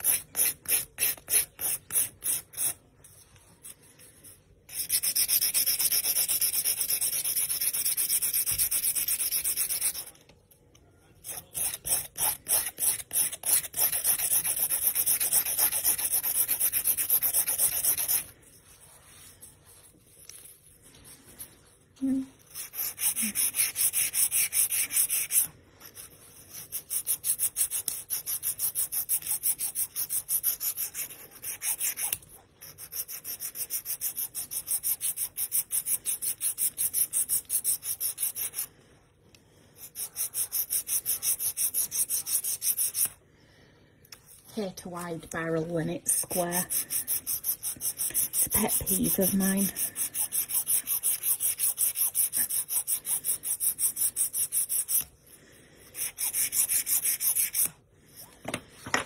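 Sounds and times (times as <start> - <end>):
nail file rasping: 0.0 - 2.8, 4.7 - 10.2, 11.2 - 18.3, 22.4 - 38.7, 39.8 - 43.2, 46.3 - 55.1, 55.9 - 57.8.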